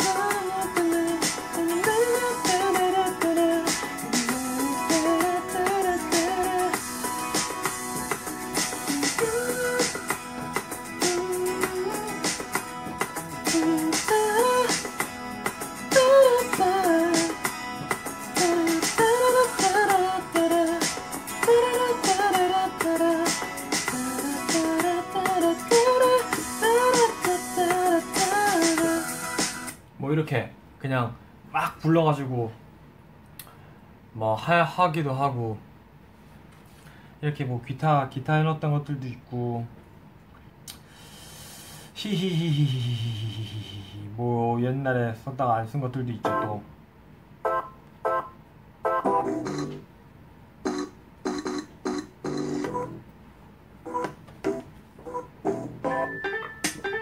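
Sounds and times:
person singing melody: 0:00.0 - 0:07.0, 0:08.6 - 0:12.6, 0:13.4 - 0:15.0, 0:15.8 - 0:17.5, 0:18.3 - 0:29.4, 0:42.0 - 0:44.2
instrumental backing track: 0:00.0 - 0:29.8, 0:46.2 - 0:46.7, 0:47.4 - 0:49.9, 0:50.6 - 0:53.2, 0:53.8 - 0:57.0.

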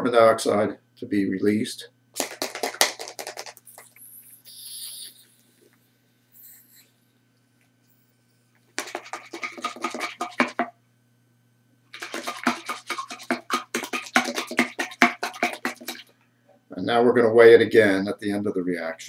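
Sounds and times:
liquid sloshing in plastic bottle: 0:08.8 - 0:10.7, 0:11.9 - 0:16.1.

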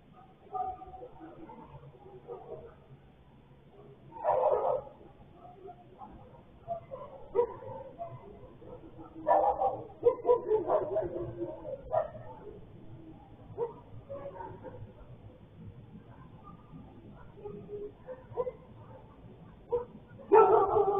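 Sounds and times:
dogs barking and yelping: 0:00.0 - 0:03.0, 0:03.6 - 0:20.9.

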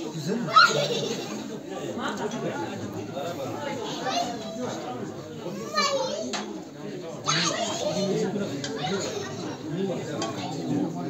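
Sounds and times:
chatter of voices: 0:00.0 - 0:11.0
high-pitched child's voice: 0:05.6 - 0:06.4.

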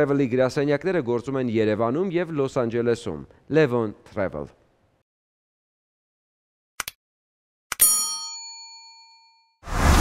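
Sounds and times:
bell-like ding: 0:07.8 - 0:09.6.

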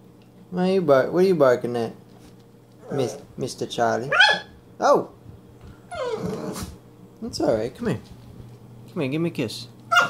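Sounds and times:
puppy barking: 0:04.1 - 0:04.6.

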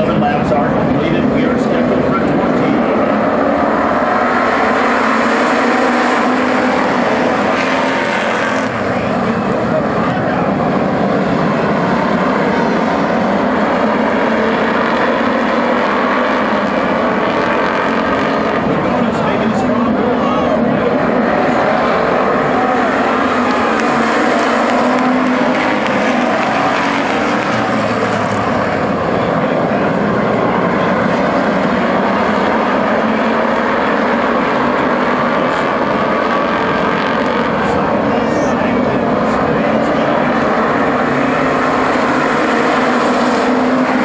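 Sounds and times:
race car engines droning: 0:00.0 - 0:44.0.

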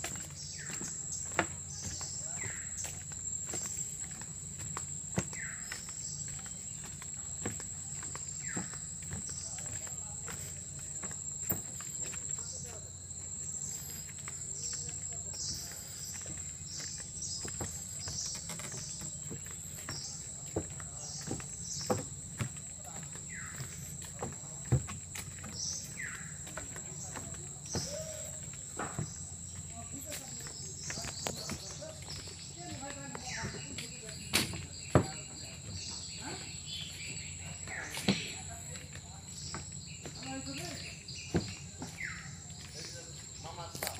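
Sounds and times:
footsteps: 0:00.0 - 0:43.9
insects droning: 0:00.0 - 0:43.9.

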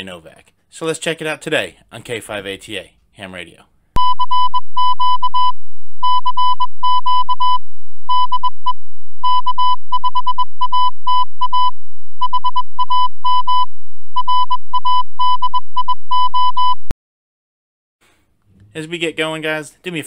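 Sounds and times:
morse code beeping: 0:04.0 - 0:16.9.

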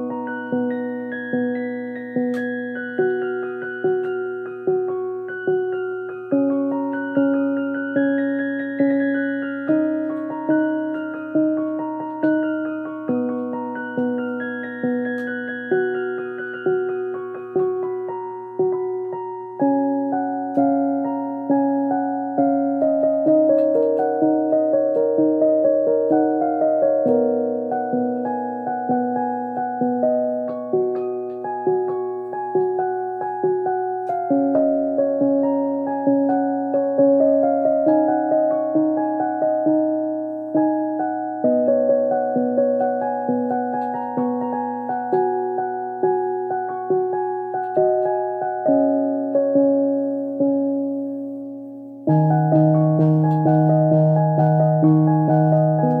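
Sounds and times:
electronic keyboard piano notes: 0:00.0 - 0:56.0.

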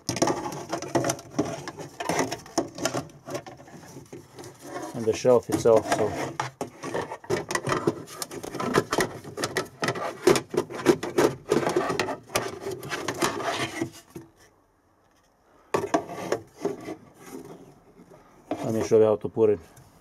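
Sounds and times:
plastic trim scraping and clicking: 0:00.0 - 0:13.9.

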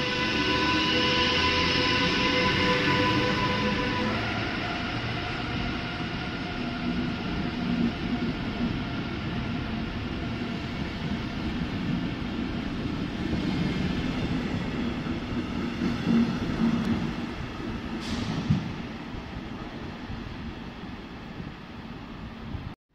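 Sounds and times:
train wheels rumbling on rails: 0:00.0 - 0:22.8.

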